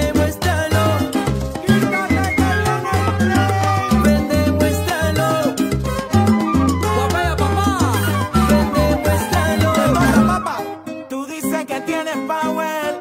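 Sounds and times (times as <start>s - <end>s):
salsa music with dense percussion: 0.0s - 13.0s.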